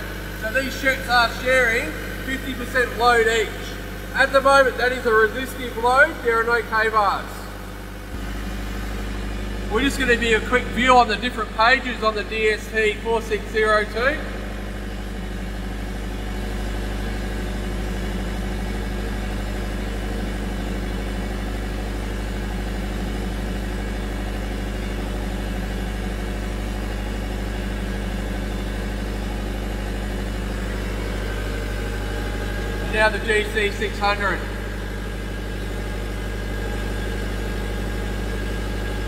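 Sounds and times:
diesel generators running: 0.0 - 39.0.

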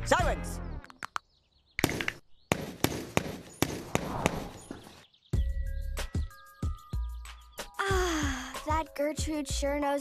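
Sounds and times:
cartoon thumps and whacks: 1.8 - 4.5.

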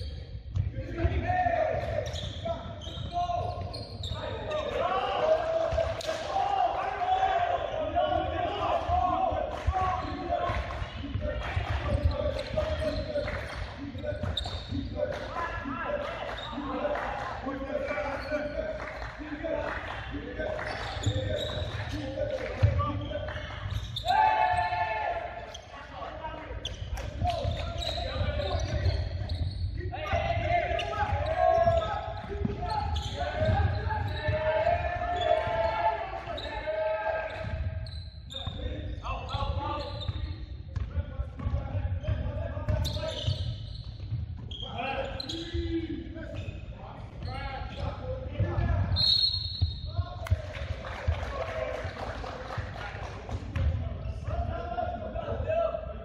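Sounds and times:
players shouting: 0.8 - 13.5, 15.1 - 26.5, 27.2 - 37.6.

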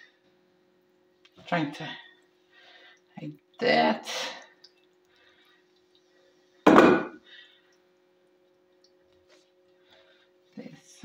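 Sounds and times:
faint steady hum: 0.0 - 11.0
colander thunk in sink: 6.7 - 7.2.

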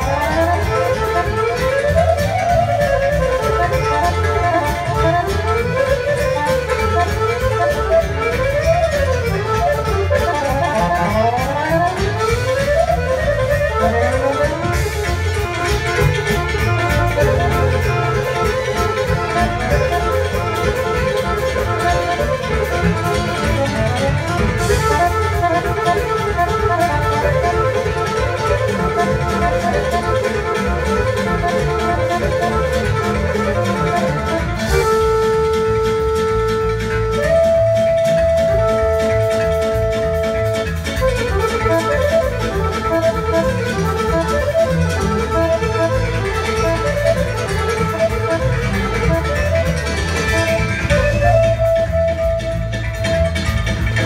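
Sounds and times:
accordions playing fast runs: 0.0 - 54.0
double bass: 0.0 - 54.0
steady beat: 0.0 - 54.0.

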